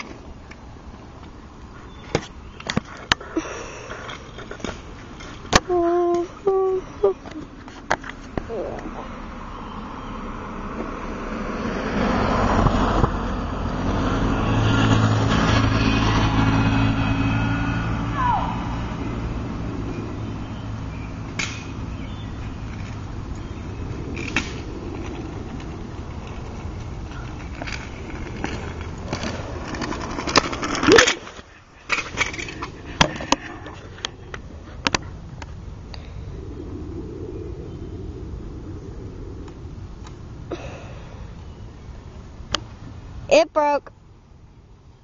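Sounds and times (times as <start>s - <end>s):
car driving past: 8.9s - 22.7s.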